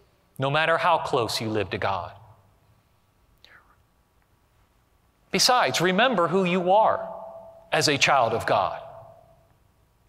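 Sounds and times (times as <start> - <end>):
man speaking: 0.4 - 2.3, 5.3 - 9.3.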